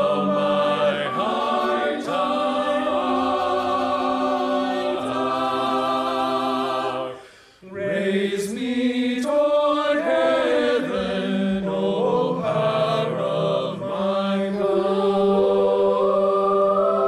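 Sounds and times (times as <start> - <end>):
choir singing held chords: 0.0 - 17.0.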